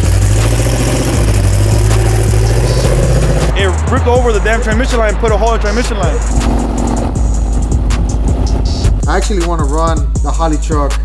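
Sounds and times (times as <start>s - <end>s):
truck engine idling: 0.0s - 9.8s.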